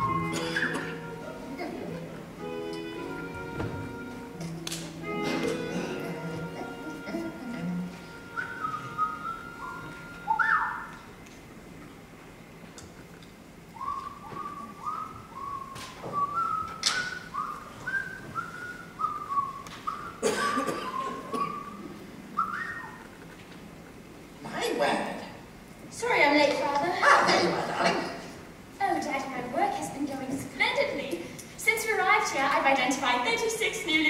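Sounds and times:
person whistling a tune: 0.0s - 1.0s, 8.2s - 10.9s, 13.8s - 20.2s, 22.4s - 23.1s.

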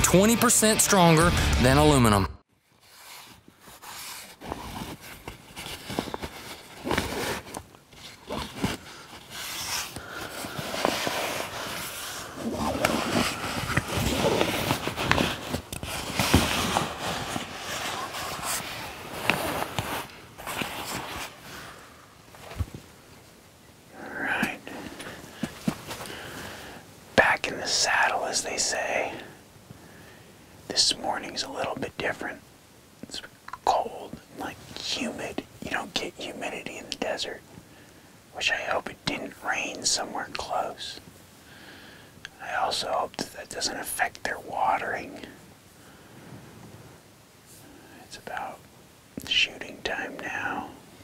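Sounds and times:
clothing and gear rustling: 2.7s - 23.4s, 24.4s - 26.7s
person whispering: 23.9s - 25.0s, 27.2s - 29.4s, 30.7s - 32.4s, 33.0s - 37.4s, 38.3s - 41.0s, 42.3s - 45.4s, 47.6s - 48.6s, 49.2s - 50.8s.

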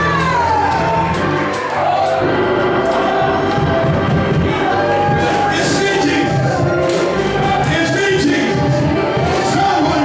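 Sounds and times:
band with pulsing low beat: 0.0s - 10.0s.

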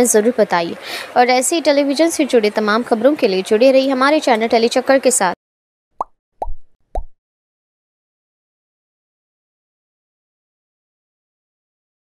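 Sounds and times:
cartoon pop blips: 6.0s - 7.2s.

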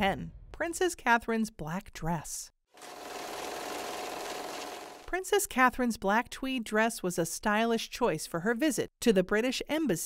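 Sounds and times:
machine-like rattling: 2.8s - 5.1s.

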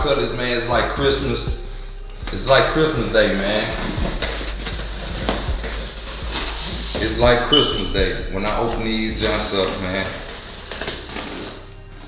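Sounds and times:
hands rubbing on cardboard: 3.5s - 7.2s.

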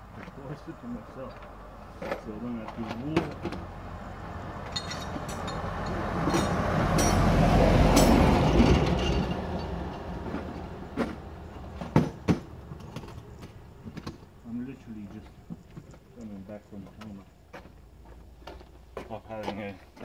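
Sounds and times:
vehicle passing by: 0.0s - 13.8s
sharp knocks and clicks: 11.8s - 14.3s.

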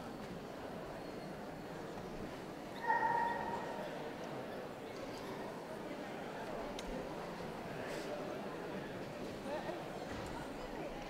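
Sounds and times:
murmur of crowd: 0.0s - 11.0s.

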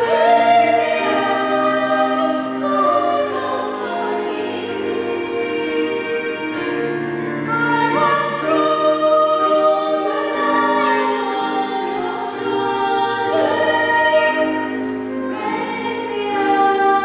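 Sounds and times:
women singing choral piece: 0.0s - 17.0s.

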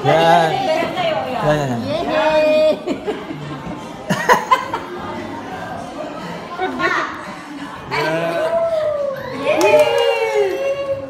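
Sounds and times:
women cheering and shouting: 7.9s - 11.0s
hand claps: 9.5s - 10.3s.

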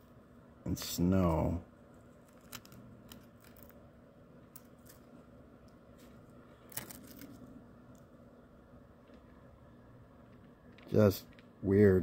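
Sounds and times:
spoon crackling in dry crystals: 6.6s - 7.4s.

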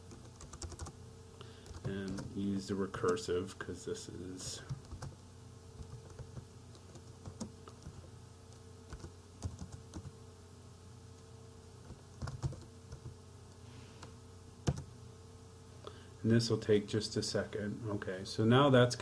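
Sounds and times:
faint steady hum: 0.0s - 19.0s
computer keyboard keystrokes: 0.1s - 0.9s, 1.6s - 2.3s, 4.7s - 5.1s, 8.9s - 10.1s, 11.9s - 13.1s, 14.6s - 14.9s.

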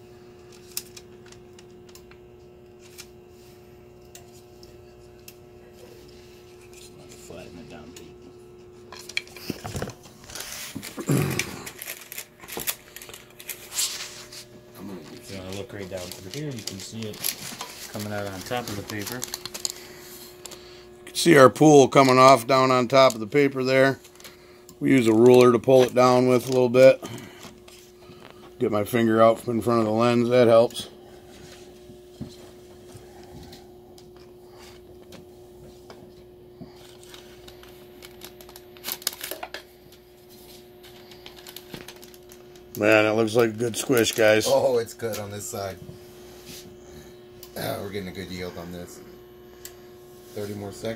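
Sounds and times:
thin steady hum: 0.0s - 50.9s.

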